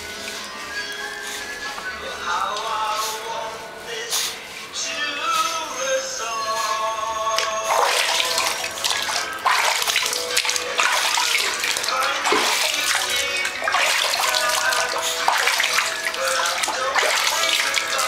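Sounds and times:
small splashes: 7.4 - 18.0
water running in bathtub: 7.4 - 18.0.

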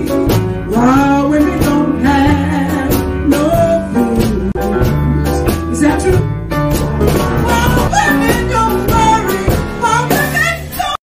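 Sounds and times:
woman singing blues: 0.0 - 6.5, 7.3 - 11.0
small band playing: 0.0 - 11.0.

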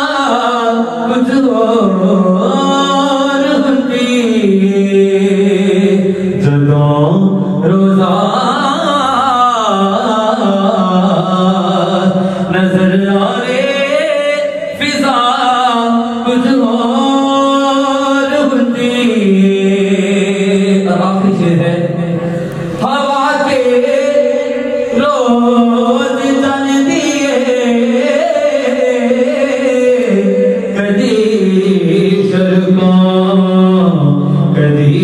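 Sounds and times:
man singing into a microphone: 0.0 - 35.0.

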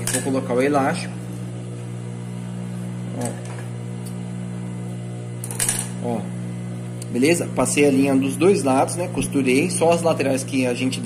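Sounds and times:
sewing machine motor humming: 0.0 - 11.0.

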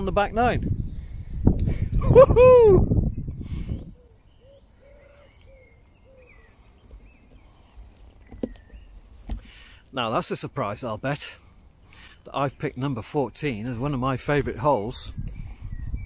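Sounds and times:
wind buffeting microphone: 0.0 - 4.4, 13.0 - 16.0
faint birdsong: 0.0 - 16.0.

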